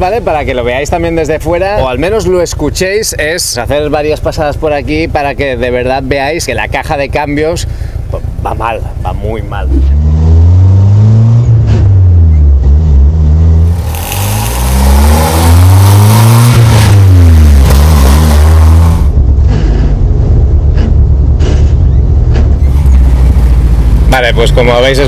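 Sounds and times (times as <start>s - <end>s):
car engine revving through gears: 9.7s - 20.1s
harsh rasping noise: 13.6s - 20.0s.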